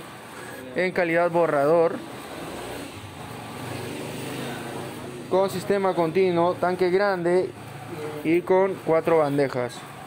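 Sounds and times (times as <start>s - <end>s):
printer whirring: 0.0s - 10.0s.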